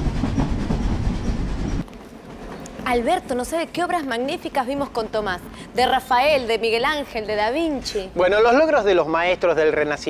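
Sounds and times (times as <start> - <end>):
train rumbling on tracks: 0.0 - 5.4.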